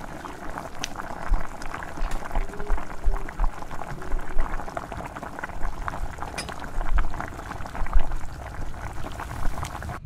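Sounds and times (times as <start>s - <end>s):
tea boiling in a saucepan: 0.0s - 10.0s.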